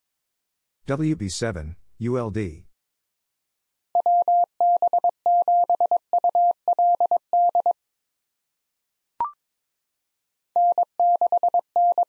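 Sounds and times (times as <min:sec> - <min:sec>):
morse code tone: 0:04.0 - 0:07.8, 0:10.6 - 0:12.0.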